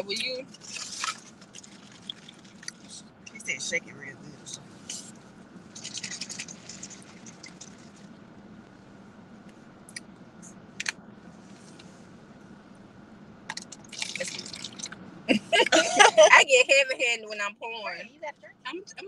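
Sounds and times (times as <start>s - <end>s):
juice pouring into plastic cup: 13.9s - 15.0s.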